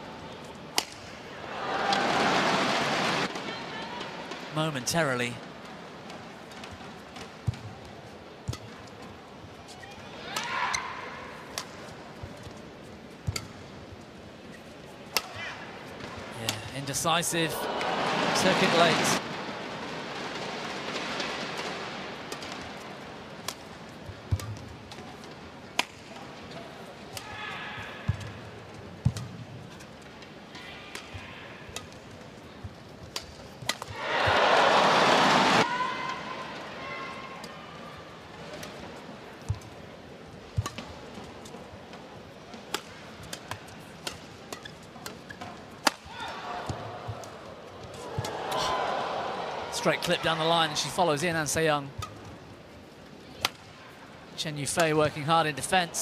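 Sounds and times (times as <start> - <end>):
rackets striking shuttlecock: 0.7 - 1.1, 24.3 - 25.0, 42.5 - 48.4
crowd cheering: 1.3 - 4.0, 17.5 - 19.2, 33.9 - 36.8, 46.1 - 51.2.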